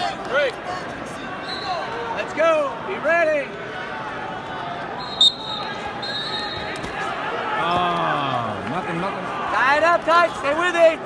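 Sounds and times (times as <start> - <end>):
crowd murmur in arena: 0.0 - 11.0
crowd shouting: 0.0 - 11.0
referee whistle blast: 5.0 - 6.8.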